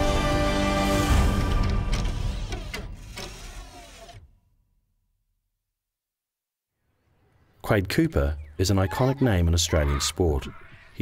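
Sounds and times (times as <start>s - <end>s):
tv theme music: 0.0s - 2.7s.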